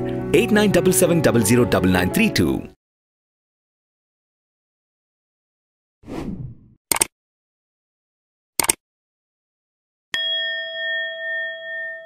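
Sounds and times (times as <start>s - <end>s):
notification bell ding: 10.2s - 12.0s.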